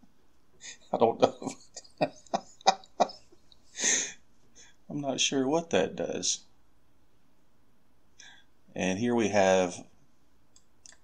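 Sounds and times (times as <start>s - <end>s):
man laughing softly: 0.6s - 4.2s.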